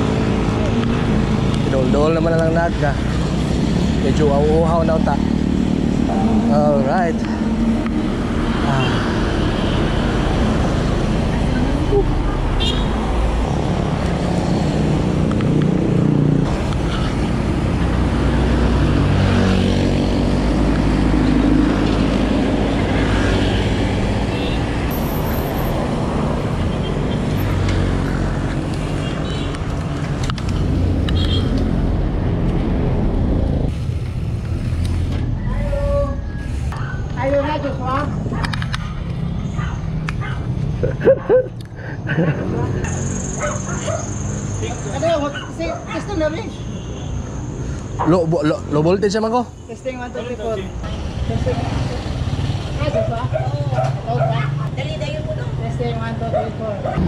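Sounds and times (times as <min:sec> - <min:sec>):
passing traffic: 0:00.0 - 0:57.0.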